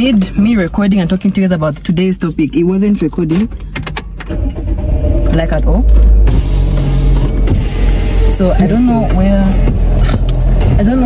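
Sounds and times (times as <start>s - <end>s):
low rumble inside car cabin: 0.0s - 11.0s.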